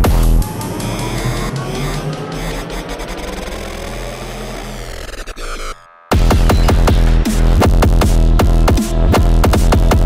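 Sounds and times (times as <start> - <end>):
noisy synth texture: 0.0 - 7.9
low bass line: 0.0 - 10.0.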